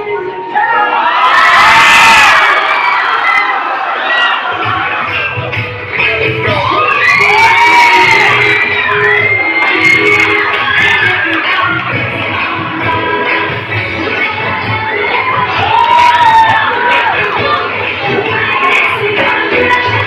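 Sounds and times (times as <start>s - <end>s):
crowd cheering and whooping: 0.0s - 13.7s, 14.4s - 20.0s
music playing: 0.0s - 20.0s.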